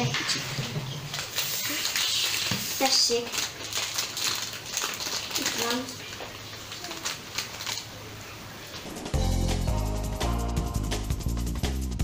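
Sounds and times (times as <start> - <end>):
wrapper crinkling: 0.1 - 9.0.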